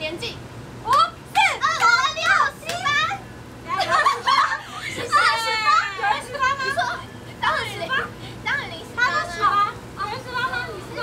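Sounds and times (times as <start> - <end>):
excited high-pitched women's voices: 0.0 - 11.0.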